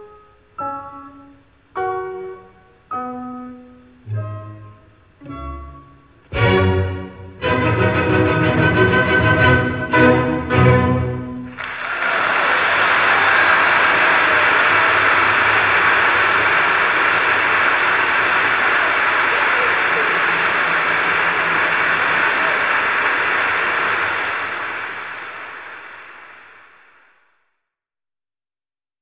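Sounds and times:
orchestra and piano chord: 4.1 - 11.6
audience applauding: 11.4 - 27.4.

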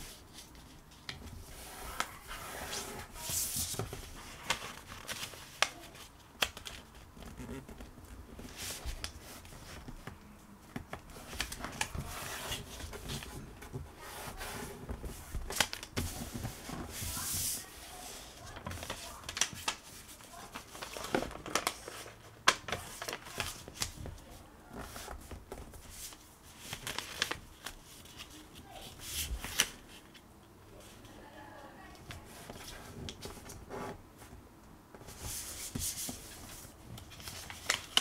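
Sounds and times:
paper rustling and crinkling: 0.0 - 30.2, 35.0 - 38.0.

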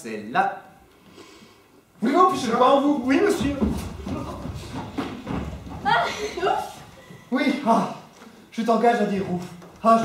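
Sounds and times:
footsteps on wooden stage floor: 2.4 - 7.3, 8.1 - 10.0.

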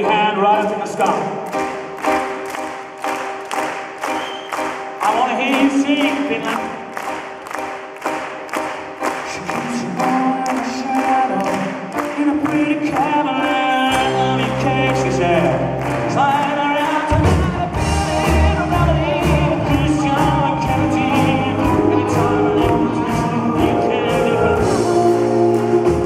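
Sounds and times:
man singing: 0.0 - 1.4, 5.0 - 6.9, 9.2 - 26.0
piano chords: 0.0 - 26.0
audience clapping in time: 0.9 - 19.0
bass line: 17.1 - 26.0.

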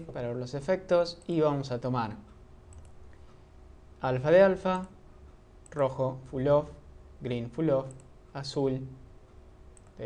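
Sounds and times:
low steady hum: 0.0 - 10.0
computer mouse clicks: 2.7 - 3.4, 7.8 - 8.1, 9.7 - 10.0.

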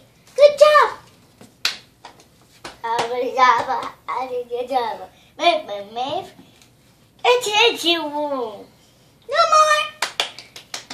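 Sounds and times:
child's voiced syllable: 0.4 - 1.0, 9.3 - 10.0
finger snap: 10.0 - 10.9.

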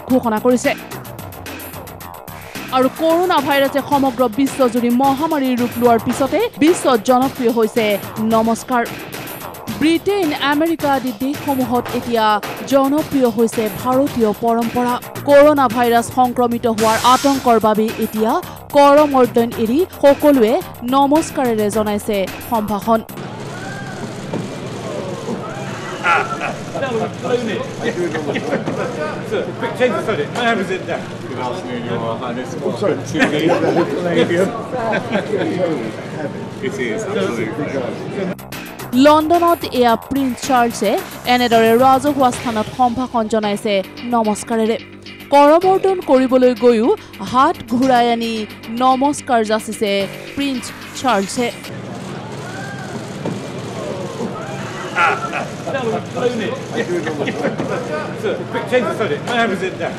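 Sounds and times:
street noise: 0.0 - 59.9
faint crowd voices: 23.2 - 38.4, 51.6 - 59.9
faint indistinct voices: 51.7 - 59.9.

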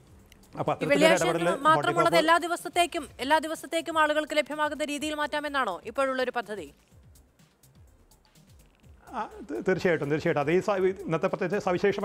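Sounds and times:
person speaking: 0.8 - 3.1.

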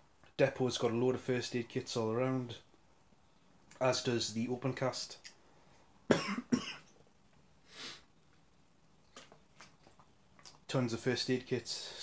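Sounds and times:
man coughing: 6.1 - 6.9.

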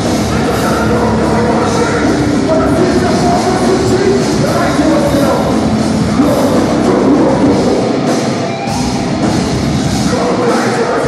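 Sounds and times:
bass guitar: 0.0 - 11.0
distorted guitars: 0.0 - 11.0
drums: 0.0 - 11.0.

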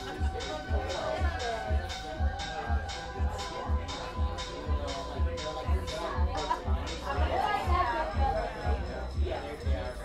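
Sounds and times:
kick drum: 0.0 - 10.0
people talking: 0.0 - 10.0.

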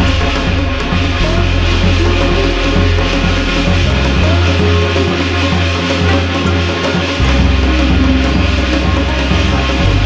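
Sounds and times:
dense ritual music: 0.0 - 10.0.

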